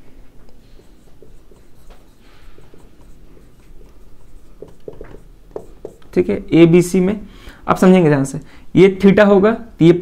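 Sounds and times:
marker writing on whiteboard: 0:00.3 - 0:06.5
marker tapping: 0:00.4 - 0:06.3.

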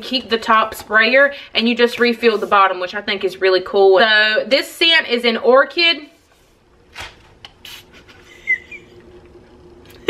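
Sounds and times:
spray bottle hissing: 0:07.6 - 0:08.0.

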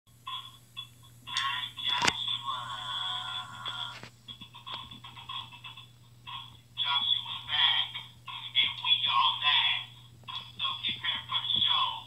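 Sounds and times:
steady low hum: 0:00.1 - 0:12.0
tinny vocal track through speaker: 0:01.3 - 0:04.0, 0:06.8 - 0:12.0.

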